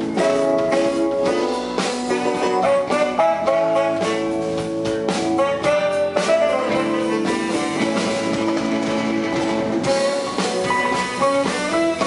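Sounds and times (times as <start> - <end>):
cymbals: 0.0 - 12.0
drum kit: 0.0 - 12.0
electric guitar: 0.0 - 12.0.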